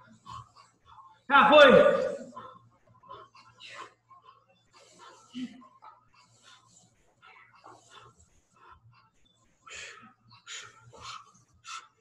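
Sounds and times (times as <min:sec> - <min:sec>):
people breathing heavily: 0:00.0 - 0:12.0.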